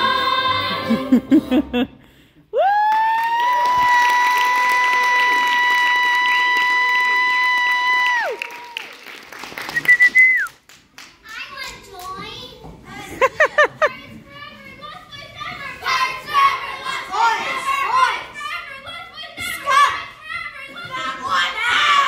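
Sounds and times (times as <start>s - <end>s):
chorus singing: 0.0s - 1.6s
person laughing: 0.8s - 2.0s
children's voices: 11.0s - 22.0s
loud shouts: 15.7s - 22.0s.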